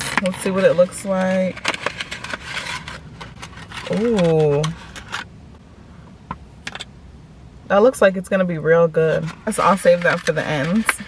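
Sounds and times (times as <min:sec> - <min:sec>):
paper sleeve crinkling: 0:00.0 - 0:05.2, 0:09.2 - 0:11.0.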